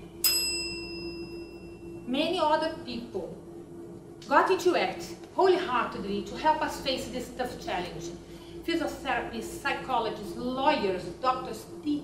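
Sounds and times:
steady low hum: 0.0s - 12.0s
high bell-like ding: 0.2s - 2.0s.

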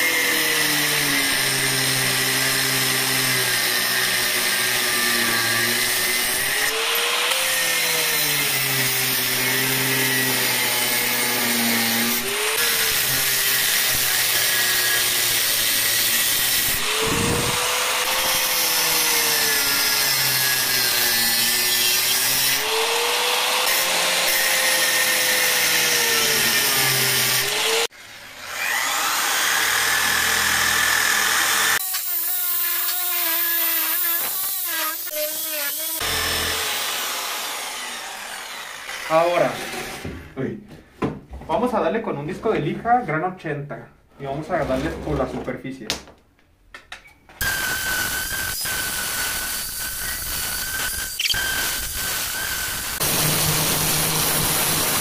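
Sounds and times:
angle grinder cutting metal: 0.0s - 40.1s, 47.4s - 55.0s.

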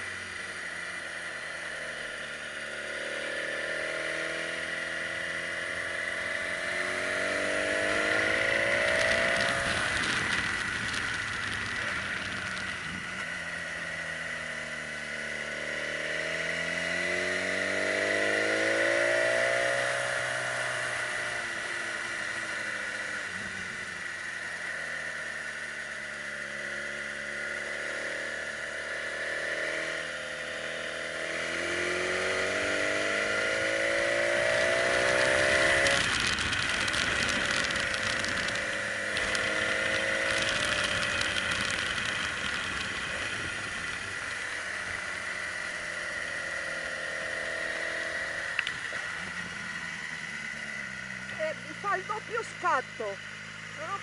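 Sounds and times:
motorcycle engine revving: 0.0s - 54.0s
steady high whine: 4.5s - 16.1s.

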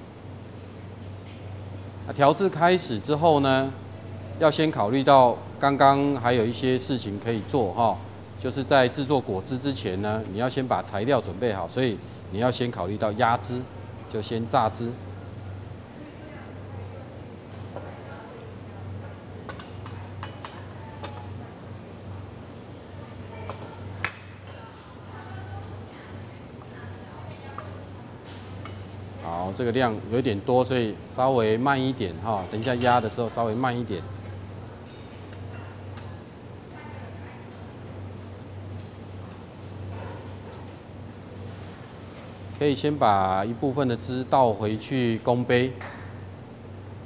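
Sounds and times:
steady low hum: 0.0s - 47.0s
glassware clinking: 23.5s - 24.8s, 32.4s - 33.3s.

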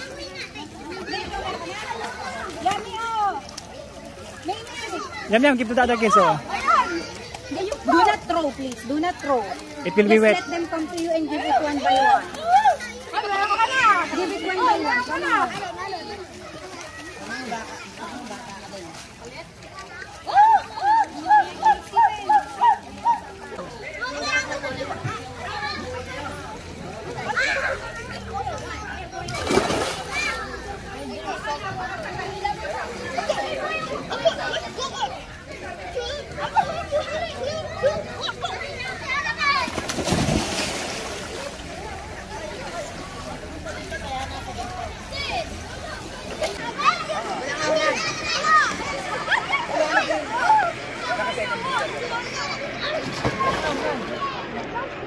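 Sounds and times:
children shouting and chattering: 0.0s - 55.0s
water splash: 29.2s - 30.5s, 39.5s - 43.3s.

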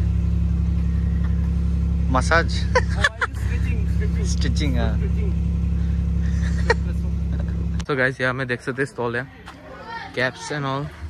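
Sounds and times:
low mechanical hum: 0.0s - 7.9s.

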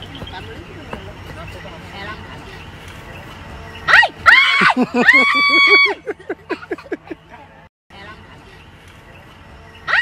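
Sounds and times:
woman shrieking: 3.9s - 6.0s.

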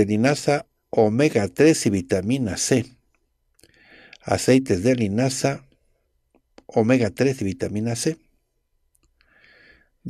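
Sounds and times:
man speaking into a microphone: 0.0s - 2.9s, 4.2s - 5.6s, 6.6s - 8.2s
short in-breath: 3.6s - 4.2s, 9.2s - 10.0s.

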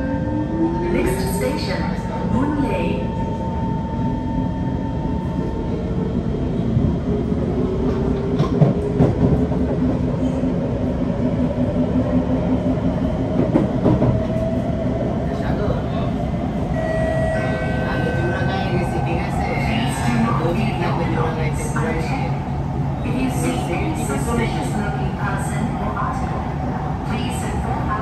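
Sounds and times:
wheels rumbling on rail: 0.1s - 28.0s.

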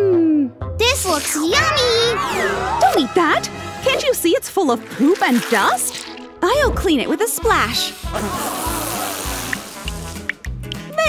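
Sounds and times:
water rinsing hiss: 4.7s - 6.2s, 7.5s - 10.5s
background music with low beat: 9.3s - 11.0s.

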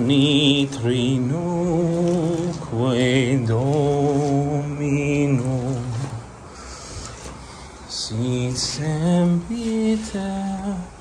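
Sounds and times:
man singing unaccompanied: 0.0s - 6.4s, 7.9s - 11.0s
breath: 6.4s - 7.9s.

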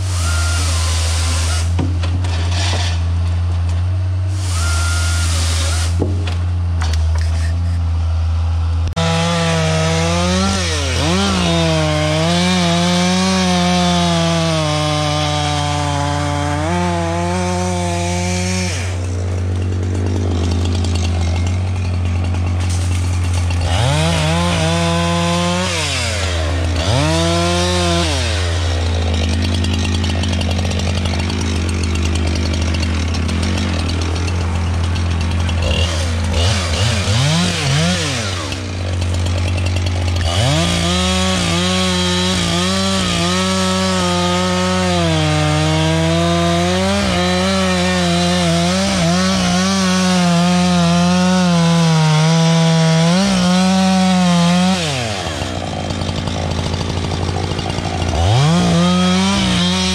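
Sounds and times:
chainsaw engine revving: 0.0s - 3.2s, 4.2s - 59.9s
chainsaw cutting at full throttle: 0.0s - 59.9s.

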